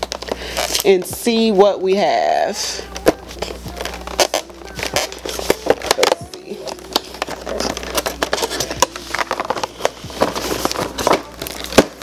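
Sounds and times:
cardboard crackling and scraping: 2.9 - 12.0
cardboard snap: 3.8 - 12.0.

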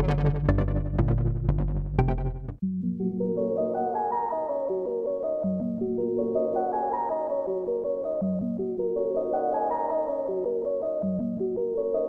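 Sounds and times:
plucked synth run of notes: 0.0 - 2.6.

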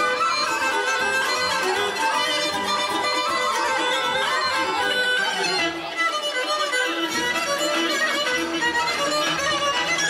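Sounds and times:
accordion: 0.0 - 10.0
fiddles: 0.0 - 10.0
wind instruments: 0.0 - 10.0.

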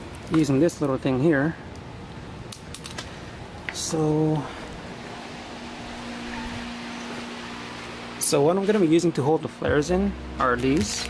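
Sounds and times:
low steady machine hum: 3.1 - 11.0.

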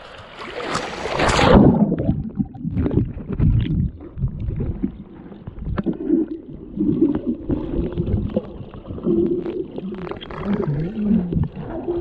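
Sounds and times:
underwater rumble of moving water: 0.0 - 12.0
water splashing against camera: 0.0 - 12.0.

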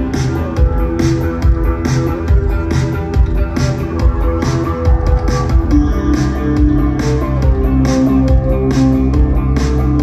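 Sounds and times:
bass line: 0.0 - 10.0
live band playing: 0.0 - 10.0.

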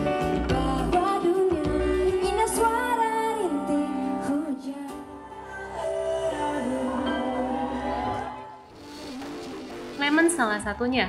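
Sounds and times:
live band music: 0.0 - 3.0, 5.6 - 10.8.

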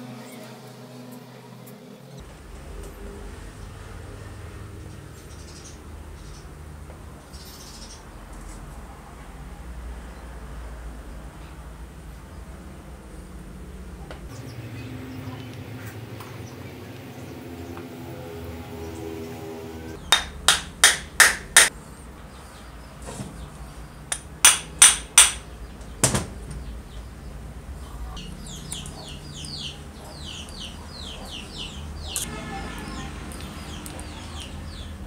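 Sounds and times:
birds chirping: 7.2 - 8.2, 14.0 - 20.6, 21.6 - 35.0.

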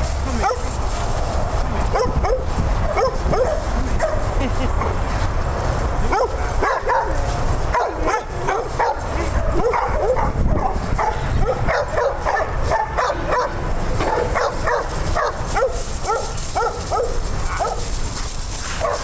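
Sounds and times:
dogs barking and yipping: 0.0 - 19.0.

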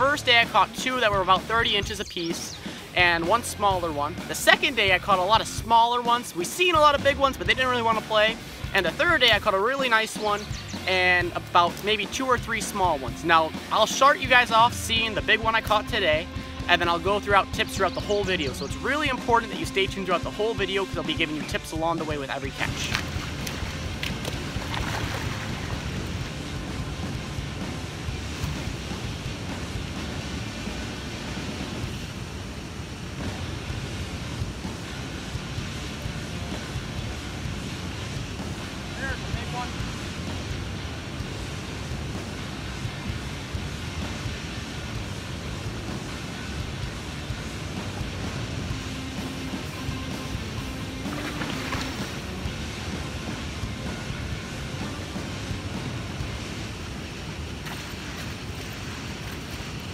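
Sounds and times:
river current rushing: 0.0 - 17.4, 18.5 - 59.9.

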